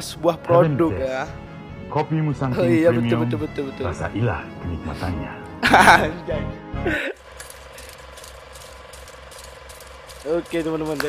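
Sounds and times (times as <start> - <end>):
mechanical ticking: 7.2 - 11.0.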